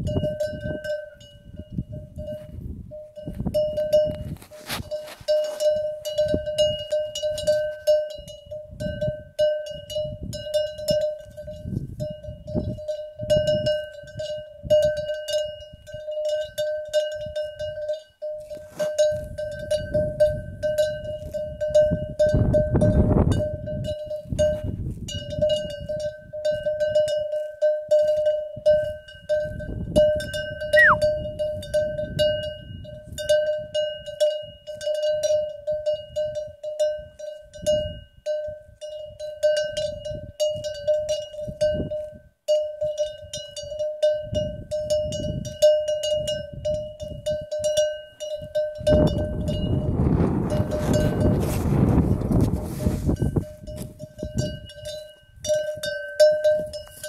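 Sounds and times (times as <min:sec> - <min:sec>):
cow bell clanking: 0:00.0 - 0:57.0.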